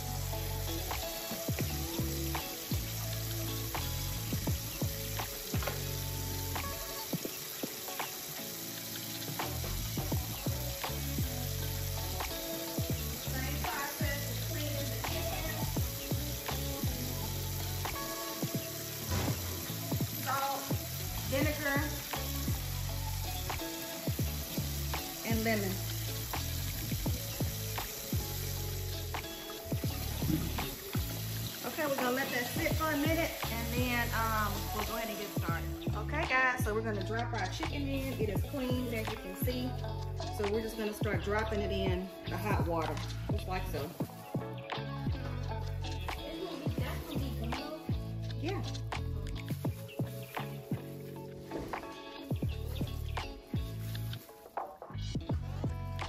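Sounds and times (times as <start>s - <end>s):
background music: 0.0s - 56.0s
tap water running into sink: 0.9s - 36.0s.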